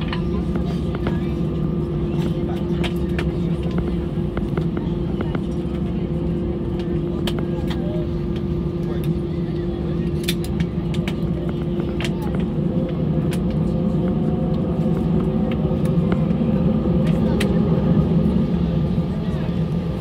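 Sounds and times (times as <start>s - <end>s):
aircraft engine humming at idle: 0.0s - 20.0s.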